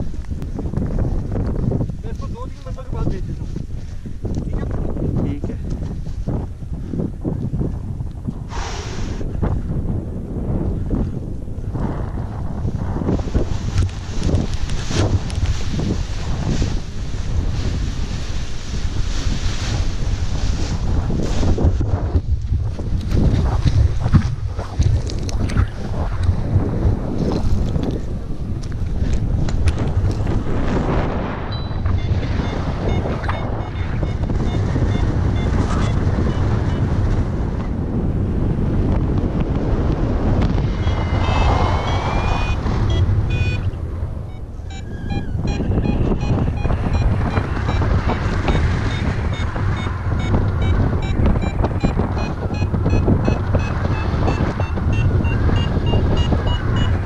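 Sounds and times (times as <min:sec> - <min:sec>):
wind buffeting microphone: 0:00.0 - 0:57.0
variometer beeping: 0:31.5 - 0:36.9, 0:40.8 - 0:57.0.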